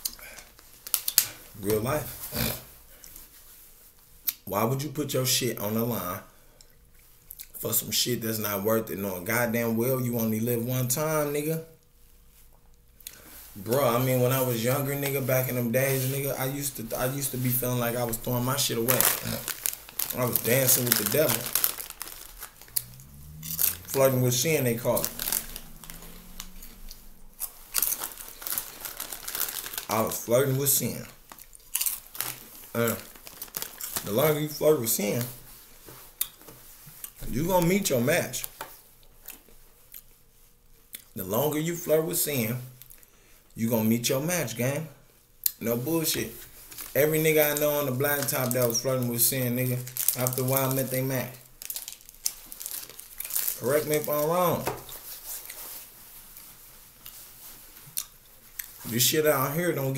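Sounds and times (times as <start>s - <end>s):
rustling crinkling handling noise: 0.0s - 4.3s, 12.0s - 40.9s, 45.8s - 59.9s.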